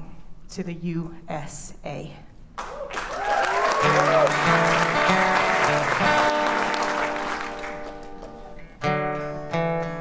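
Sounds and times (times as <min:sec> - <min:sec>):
audience applause and cheering: 0:02.6 - 0:08.5
acoustic guitars playing: 0:03.8 - 0:10.0.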